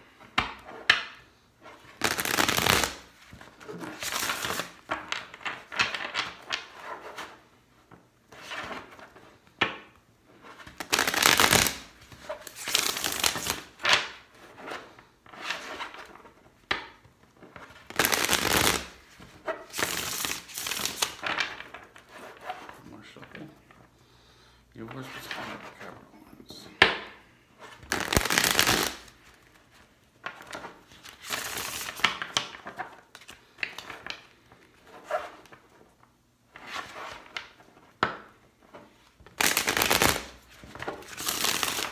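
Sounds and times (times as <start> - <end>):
cards being shuffled: 1.7 - 7.4, 10.4 - 23.4, 27.6 - 35.8, 38.7 - 41.9.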